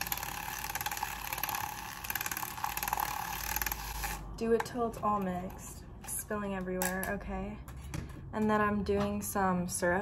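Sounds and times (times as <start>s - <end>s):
milk frother buzzing whir: 0.0s - 4.4s.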